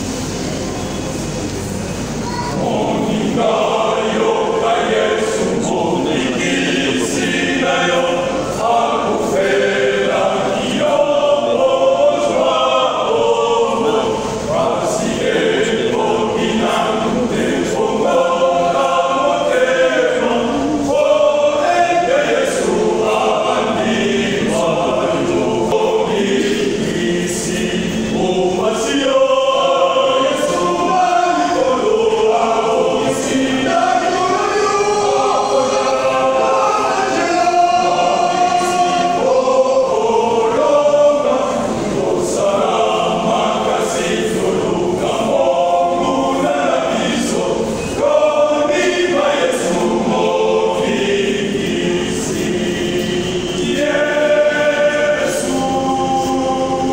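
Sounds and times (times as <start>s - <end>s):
men's choir singing in harmony: 1.2s - 56.9s.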